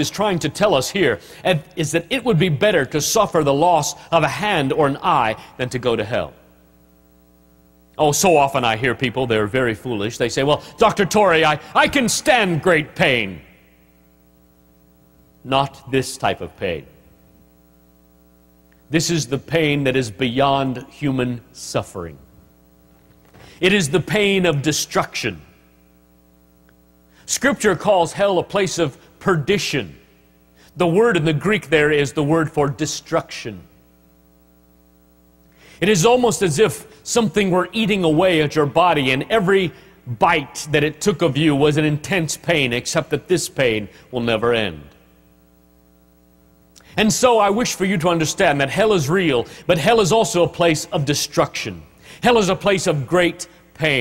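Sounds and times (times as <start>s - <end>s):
man's voice: 0.0s - 6.4s, 8.0s - 13.5s, 18.9s - 22.2s, 23.6s - 25.5s, 30.8s - 33.6s, 35.8s - 45.0s, 47.0s - 54.0s
steady electrical hum: 0.0s - 54.0s.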